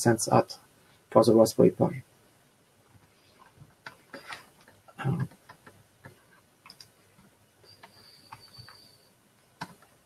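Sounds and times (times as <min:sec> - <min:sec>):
faint irregular clicks: 0:02.8 - 0:10.0.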